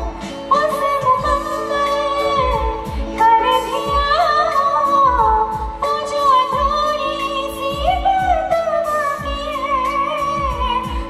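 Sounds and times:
woman singing into microphone: 0.0 - 11.0.

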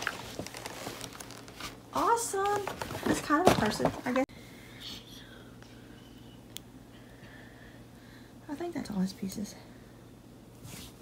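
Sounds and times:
faint whispering: 4.7 - 6.4.

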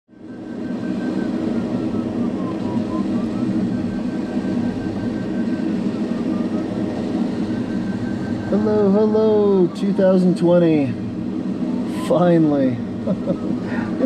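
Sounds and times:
faint high beeping tone: 0.1 - 10.8, 11.8 - 14.0
airflow rushing in cockpit: 0.1 - 14.0.

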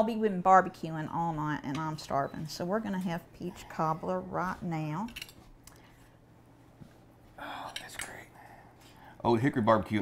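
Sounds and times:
person whispering: 7.4 - 8.7.

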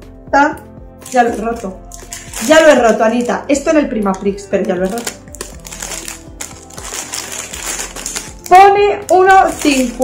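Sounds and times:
faint background music: 0.0 - 10.0
woman speaking: 0.3 - 5.2, 8.5 - 10.0
plastic snack packet crinkling: 1.0 - 3.6, 4.6 - 10.0.

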